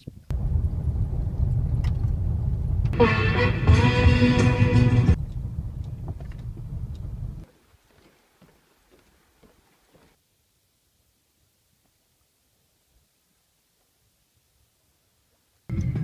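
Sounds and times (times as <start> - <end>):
music: 3.0 - 5.2, 15.7 - 16.0
car cabin rumble on gravel: 5.2 - 7.5.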